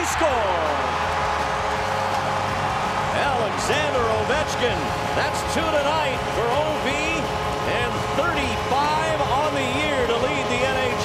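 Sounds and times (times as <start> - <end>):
arena crowd noise: 0.0 - 11.0
man talking: 3.2 - 11.0.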